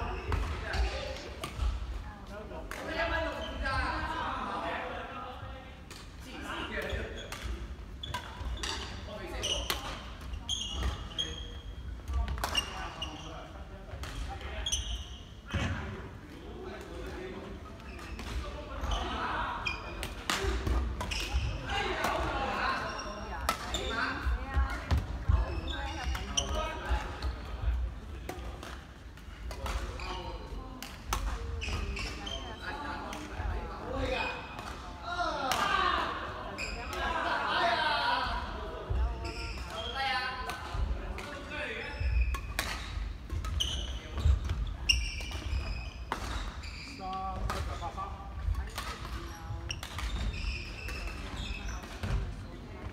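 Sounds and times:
shoes squeaking on court: 6.9 - 11.8, 22.8 - 27.5, 31.4 - 32.8, 36.5 - 36.9, 39.0 - 40.0, 41.7 - 48.0, 48.6 - 52.9
rackets hitting shuttlecock: 12.3 - 12.7, 19.9 - 22.4, 23.4 - 27.6, 42.3 - 46.6, 47.3 - 49.2, 49.8 - 50.3.

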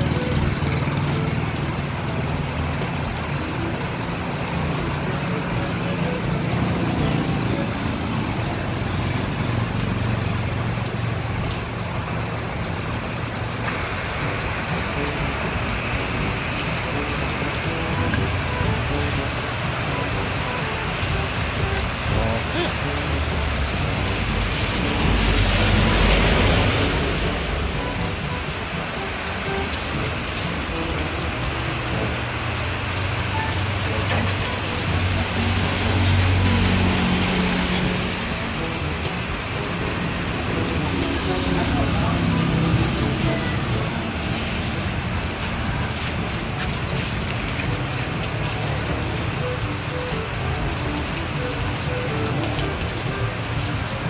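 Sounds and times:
heavy rain on street and roof: 0.0 - 54.0.

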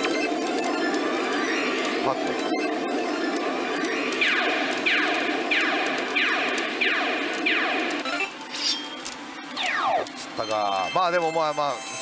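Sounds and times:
electronic game sound effects: 0.0 - 11.3.

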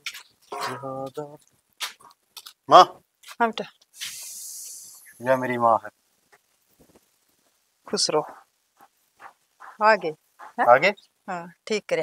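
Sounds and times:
short high hiss: 3.3 - 7.3
person speaking: 9.2 - 11.0.

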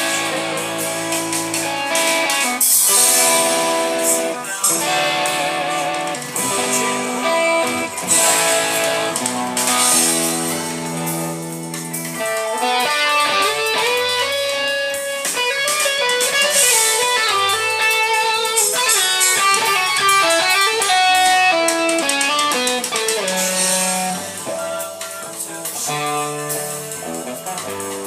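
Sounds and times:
band backing track: 0.0 - 28.0
electric guitar lead line: 0.0 - 28.0.

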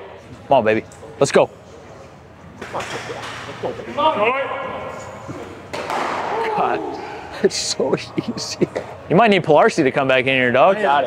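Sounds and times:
man shouting encouragement: 6.3 - 7.2.

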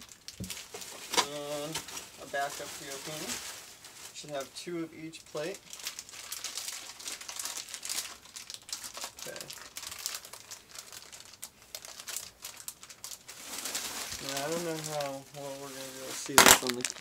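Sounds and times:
plastic packaging crinkling: 0.0 - 17.0.

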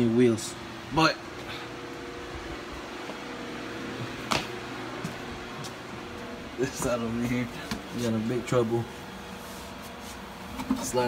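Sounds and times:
machine hum: 0.0 - 11.0.

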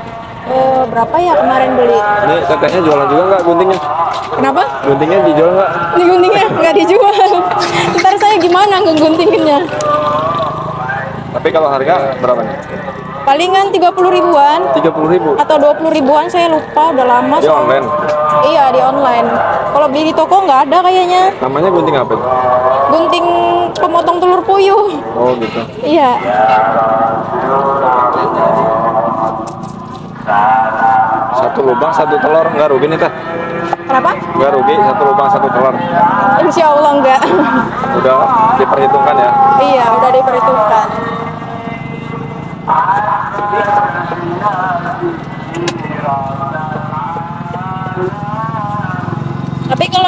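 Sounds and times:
voices talking: 0.0 - 50.0.

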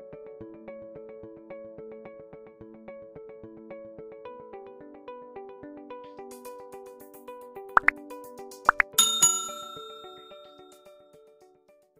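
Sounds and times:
light background music: 3.1 - 11.5.

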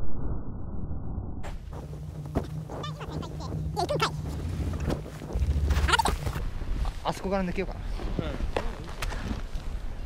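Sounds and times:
wind buffeting microphone: 1.6 - 10.0.

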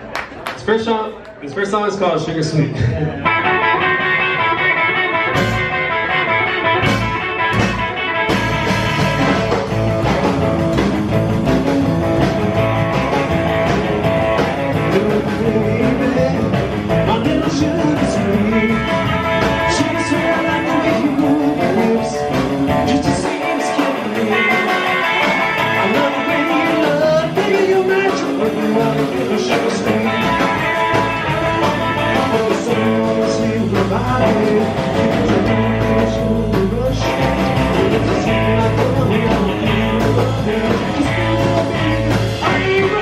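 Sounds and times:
rock and roll band playing: 0.0 - 43.0
male lead vocal: 14.7 - 43.0.

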